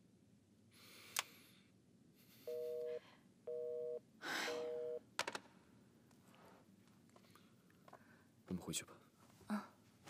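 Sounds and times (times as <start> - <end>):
person breathing: 0.7 - 3.4, 4.2 - 4.9, 6.3 - 8.4
telephone busy tone beeps: 2.5 - 4.0, 4.6 - 5.0.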